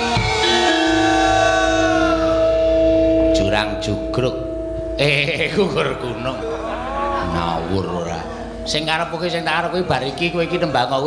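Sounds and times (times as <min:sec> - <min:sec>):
gamelan gongs ringing: 0:00.0 - 0:11.0.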